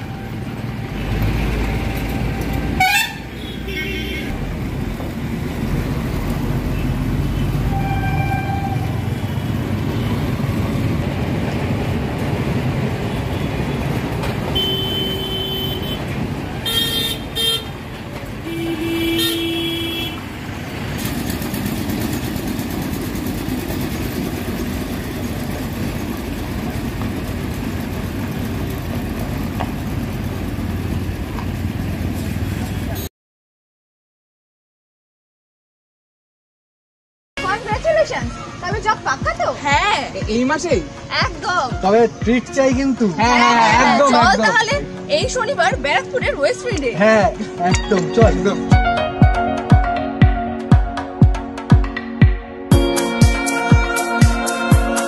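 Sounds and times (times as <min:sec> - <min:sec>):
street traffic: 0:00.0 - 0:33.1, 0:37.4 - 0:55.0
vehicle horns honking: 0:01.9 - 0:04.4, 0:07.3 - 0:10.3, 0:13.0 - 0:20.3.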